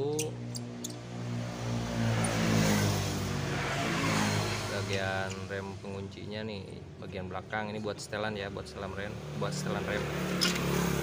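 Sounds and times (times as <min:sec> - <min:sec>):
motor vehicle passing: 0:00.3 - 0:05.8, 0:09.1 - 0:11.0.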